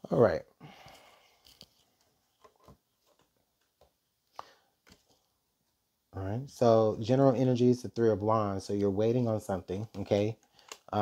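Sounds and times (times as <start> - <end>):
tarot cards tapping and clicking: 9.8 - 11.0.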